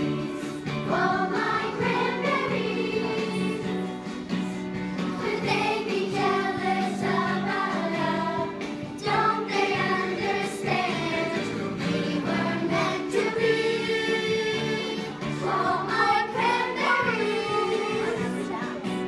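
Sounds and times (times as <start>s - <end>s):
group of voices singing: 0.0s - 19.0s.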